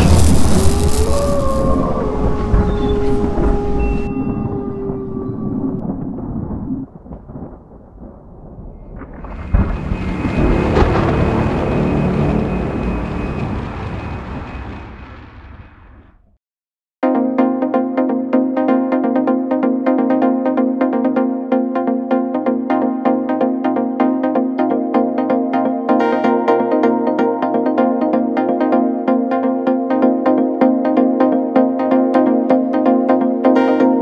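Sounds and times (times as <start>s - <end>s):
cinematic hit: 0.0s - 7.4s, 8.9s - 16.2s
deep booming rumble: 0.0s - 16.3s.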